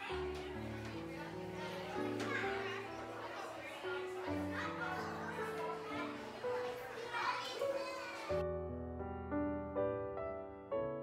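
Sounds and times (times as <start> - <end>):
children chattering and calling out: 0.0 - 8.4.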